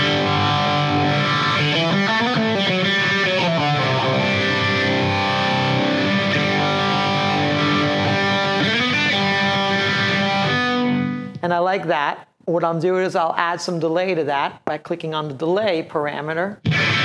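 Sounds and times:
distorted electric guitar: 0:00.0 - 0:11.4, 0:16.6 - 0:17.0.

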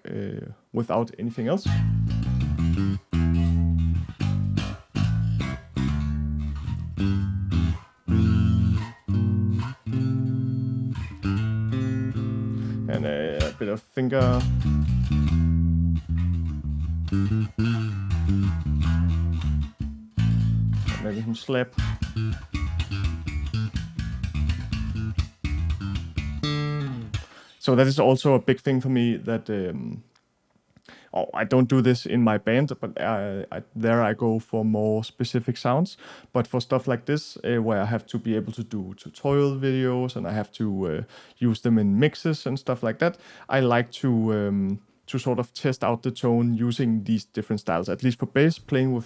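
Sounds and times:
electric bass guitar riff: 0:01.6 - 0:27.5.

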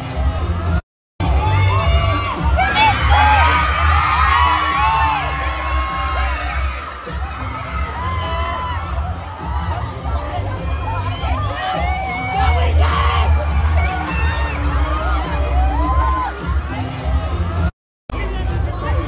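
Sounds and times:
crowd screaming and shouting: 0:00.0 - 0:19.0.

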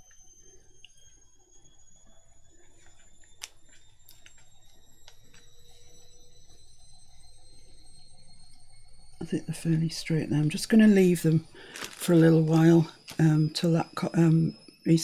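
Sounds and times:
faint low hum: 0:00.0 - 0:15.0
thin high-pitched tones rising: 0:00.0 - 0:15.0.

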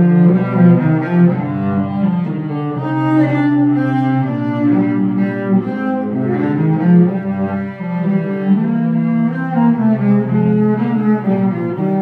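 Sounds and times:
bowed cello: 0:00.0 - 0:12.0.

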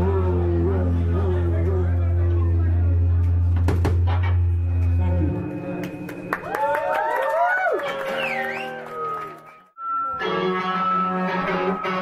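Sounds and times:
low bass note: 0:00.0 - 0:06.4
live rock band playing: 0:09.9 - 0:12.0.

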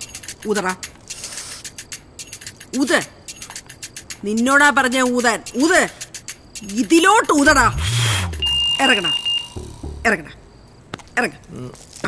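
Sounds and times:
high beep: 0:07.5 - 0:10.3.

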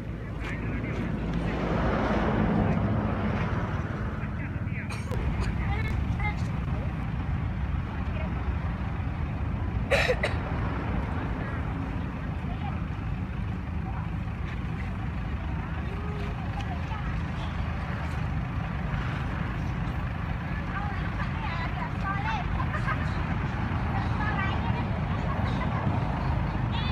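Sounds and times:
faint voices: 0:00.0 - 0:26.9.

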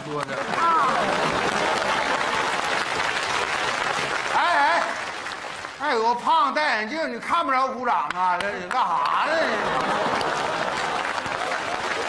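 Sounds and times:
audience applauding: 0:00.0 - 0:05.9, 0:08.1 - 0:12.0
person speaking: 0:05.8 - 0:09.8.

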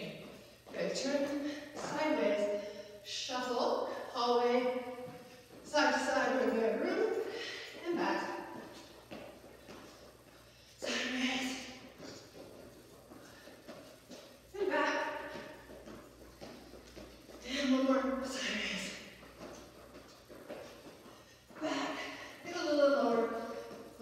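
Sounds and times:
woman speaking: 0:00.0 - 0:05.0, 0:05.6 - 0:08.7, 0:10.8 - 0:11.9, 0:14.5 - 0:15.6, 0:17.4 - 0:19.1, 0:21.5 - 0:23.7.

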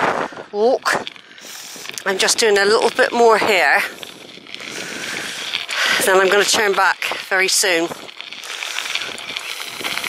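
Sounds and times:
bicycle tyres rolling on gravel: 0:00.0 - 0:10.0.

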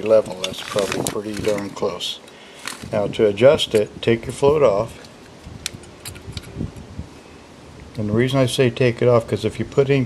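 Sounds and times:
light handling noise: 0:00.0 - 0:06.9.

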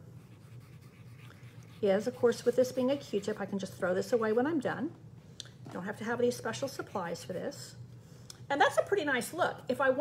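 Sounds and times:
cotton swab rubbing on card: 0:00.2 - 0:03.7.

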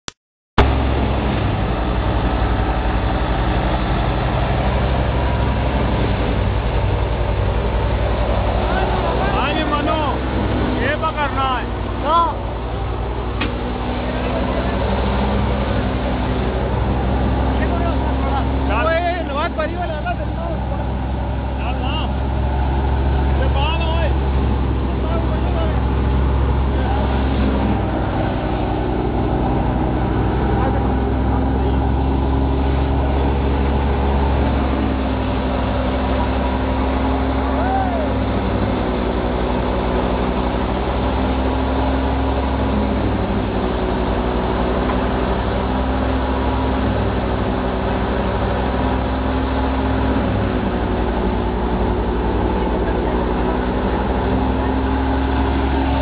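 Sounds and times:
vehicle engine drone: 0:00.6 - 0:56.0
voices: 0:08.4 - 0:39.2, 0:50.0 - 0:56.0.

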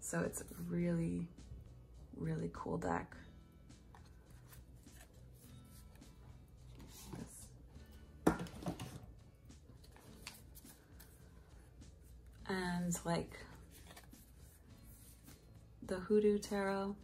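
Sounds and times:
soft background music: 0:00.0 - 0:17.0
cards rustling and clicking: 0:03.9 - 0:07.5, 0:09.8 - 0:11.2, 0:13.5 - 0:15.4.

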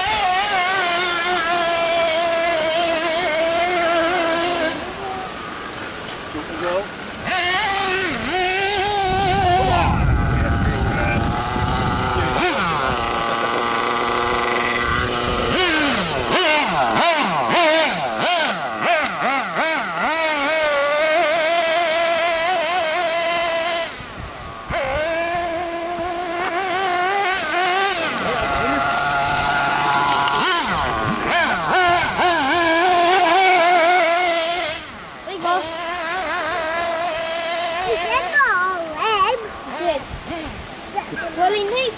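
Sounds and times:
small engine revving: 0:00.0 - 0:41.9.

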